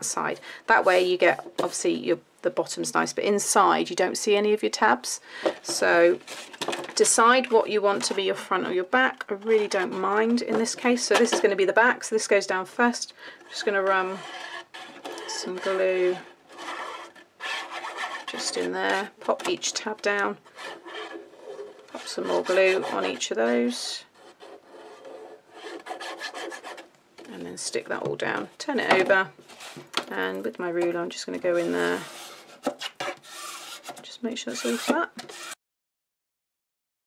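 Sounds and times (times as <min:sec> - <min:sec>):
ruler scraping cardstock: 0:13.8 - 0:19.8, 0:20.4 - 0:26.9, 0:31.5 - 0:35.6.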